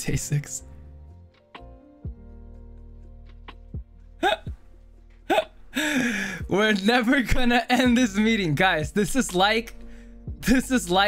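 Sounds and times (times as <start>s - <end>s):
quiet background music: 0.0s - 11.0s
man laughing: 4.2s - 4.6s, 5.3s - 6.4s.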